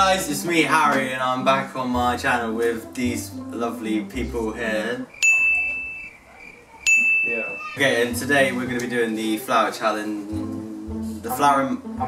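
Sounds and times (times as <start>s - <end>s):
high electronic ding: 5.2s - 6.1s, 6.9s - 7.8s.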